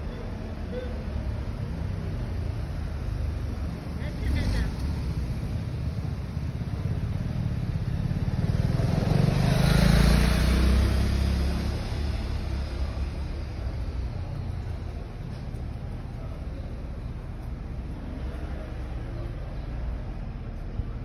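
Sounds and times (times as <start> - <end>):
street background: 0.0 - 21.0
vehicle passing: 1.7 - 21.0.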